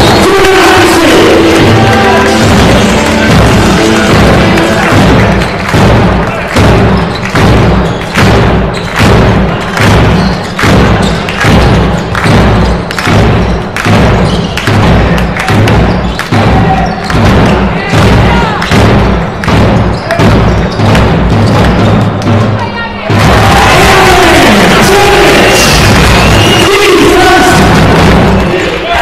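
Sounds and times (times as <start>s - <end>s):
loud drumbeat: 0.0s - 29.0s
music: 0.0s - 29.0s.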